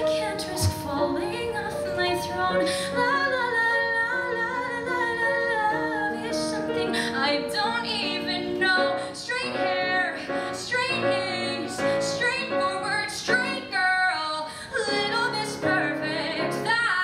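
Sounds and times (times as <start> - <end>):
piano accompaniment: 0.0 - 17.0
woman singing: 0.0 - 17.0.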